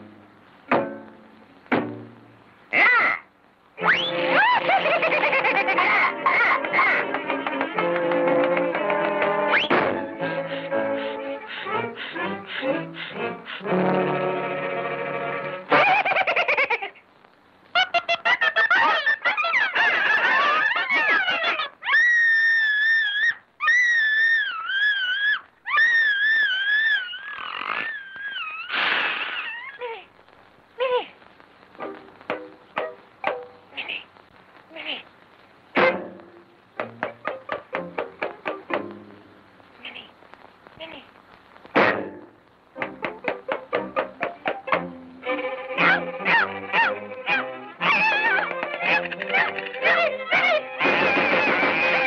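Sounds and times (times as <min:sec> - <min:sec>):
orchestral cartoon music: 0:03.8 - 0:15.8, 0:42.8 - 0:52.0
cartoon squealing cries: 0:20.6 - 0:30.1, 0:45.8 - 0:52.0
high wavering wails: 0:45.7 - 0:52.0.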